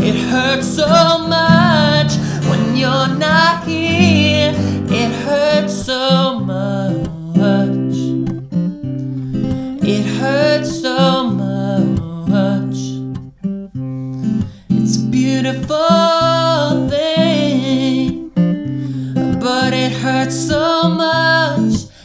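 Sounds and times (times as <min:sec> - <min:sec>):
man singing: 0:00.0 - 0:08.3, 0:09.5 - 0:13.1, 0:14.7 - 0:18.4, 0:19.2 - 0:22.0
acoustic guitar playing chords: 0:00.0 - 0:22.0.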